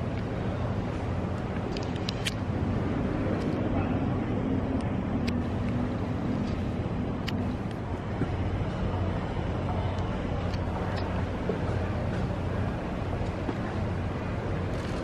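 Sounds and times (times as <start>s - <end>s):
distant murmuring voices: 0.0s - 15.0s
low rumble of street traffic: 0.0s - 15.0s.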